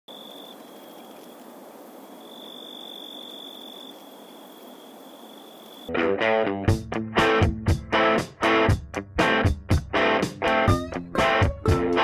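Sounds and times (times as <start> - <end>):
constant hiss: 0.1 - 5.9
loud guitar music: 5.9 - 12.0.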